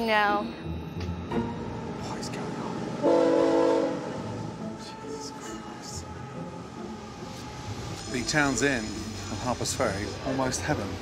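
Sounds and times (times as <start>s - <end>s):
passing train: 0.0s - 11.0s
train horn blast: 3.0s - 8.4s.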